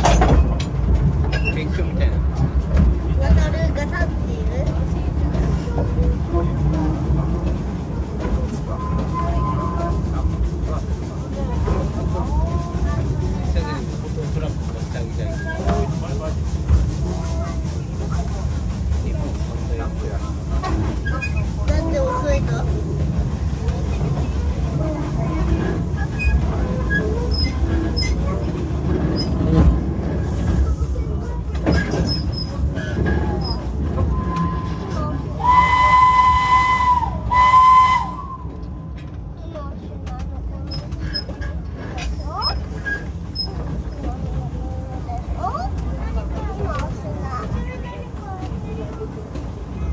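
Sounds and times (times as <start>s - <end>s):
train wheels rumbling on rails: 0.0s - 49.9s
wheel squeals: 1.3s - 1.8s, 21.0s - 21.5s, 25.6s - 28.3s, 40.7s - 43.7s
steam locomotive whistle: 34.1s - 38.6s.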